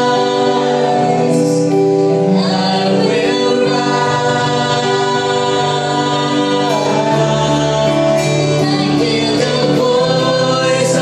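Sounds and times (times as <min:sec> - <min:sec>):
keyboard accompaniment: 0:00.0 - 0:11.0
man and woman singing duet: 0:00.0 - 0:11.0.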